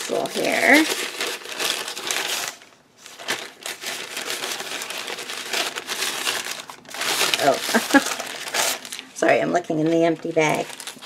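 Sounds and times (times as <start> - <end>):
packaging bag crinkling: 0.0 - 11.0.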